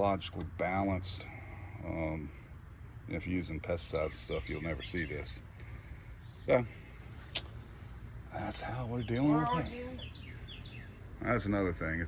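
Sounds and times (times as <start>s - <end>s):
outdoor background rumble: 0.0s - 12.0s.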